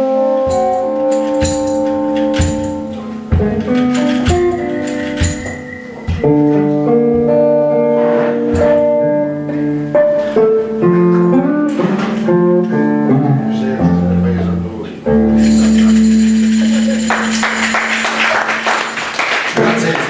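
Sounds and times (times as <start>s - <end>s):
electric guitar playing blues: 0.0s - 19.1s
drum hits: 0.5s - 6.5s.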